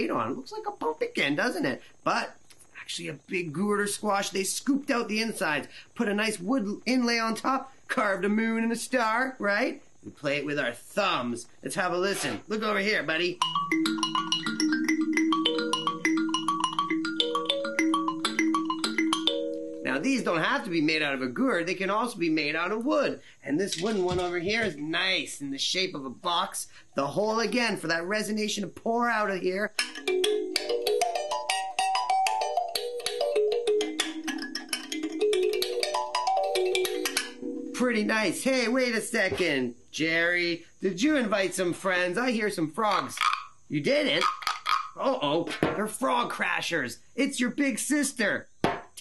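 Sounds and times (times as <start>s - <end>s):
thumb piano melody: 13.3s - 20.7s, 29.8s - 38.8s
kalimba plucking: 13.4s - 19.9s, 29.7s - 38.4s, 44.2s - 45.0s.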